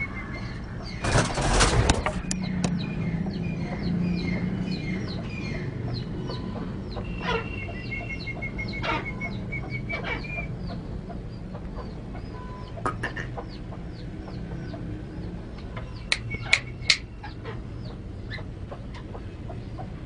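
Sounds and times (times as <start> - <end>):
loud sharp bird calls: 0.0 - 20.0
fast ticking bird notes: 0.1 - 20.0.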